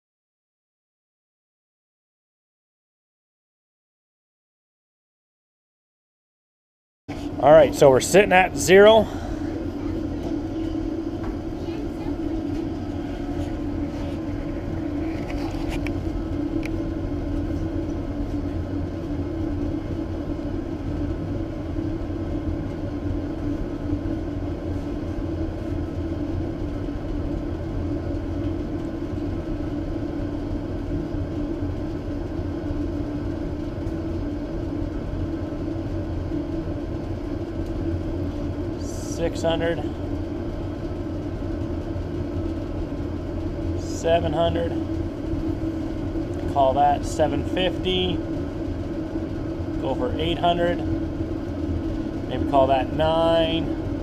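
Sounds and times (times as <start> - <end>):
furnace burner drone: 7.1 - 54.0.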